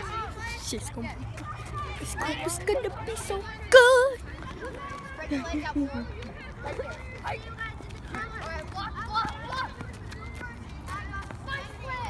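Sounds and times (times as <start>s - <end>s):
boys calling out: 0.0s - 12.0s.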